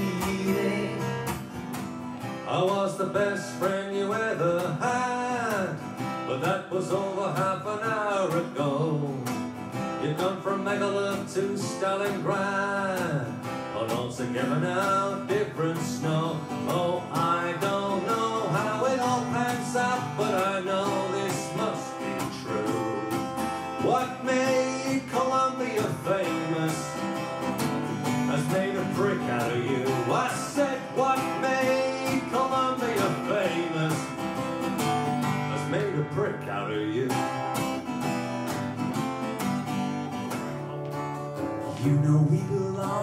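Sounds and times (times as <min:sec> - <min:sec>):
man singing: 0:00.0 - 0:01.6, 0:02.2 - 0:37.6, 0:41.6 - 0:43.0
acoustic guitar strummed: 0:00.0 - 0:43.0.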